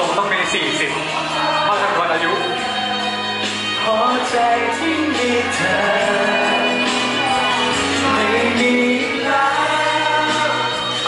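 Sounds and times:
backing music: 0.0s - 11.0s.

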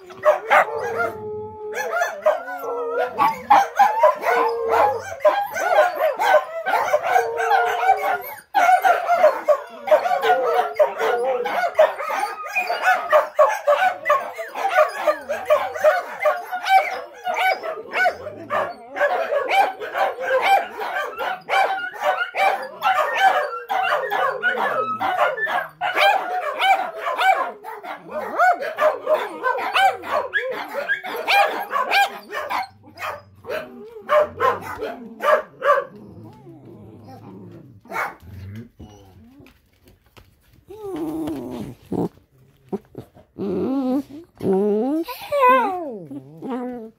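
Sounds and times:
dogs howling: 0.0s - 39.6s, 40.7s - 46.9s
dogs barking and yipping: 0.0s - 46.9s.

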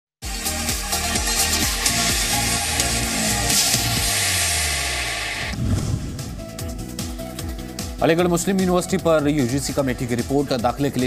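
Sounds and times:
news intro music: 0.2s - 11.0s
electronic whoosh: 2.3s - 7.0s.

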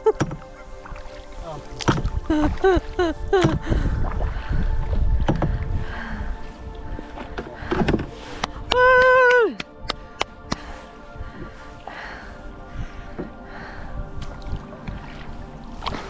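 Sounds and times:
canoe paddling: 0.0s - 9.5s, 10.4s - 16.0s
background music: 0.0s - 16.0s
water and wind rumble: 0.0s - 16.0s
paddle knocking canoe hull: 1.7s - 2.7s, 3.3s - 5.7s.

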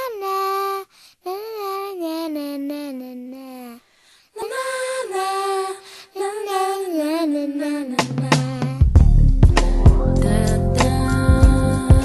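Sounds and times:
high singing voice: 0.0s - 12.0s.

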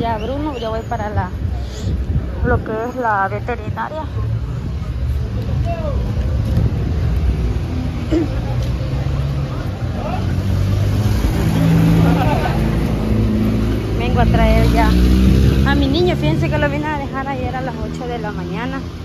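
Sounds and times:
vehicle engines running: 0.0s - 19.0s
vehicle passing: 3.4s - 19.0s.

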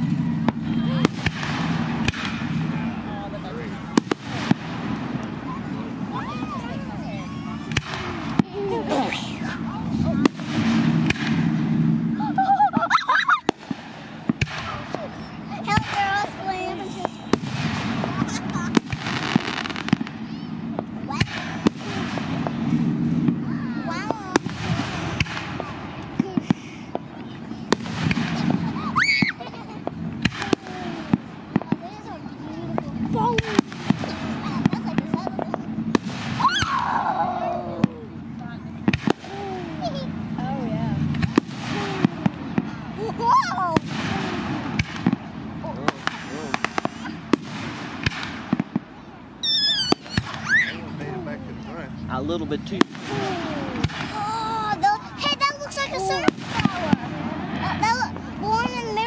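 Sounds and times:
fireworks bangs and cracks: 0.0s - 59.0s.

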